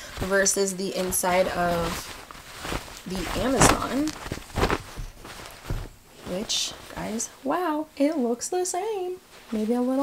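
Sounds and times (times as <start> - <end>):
fabric shorts rustling: 0.0 - 10.0.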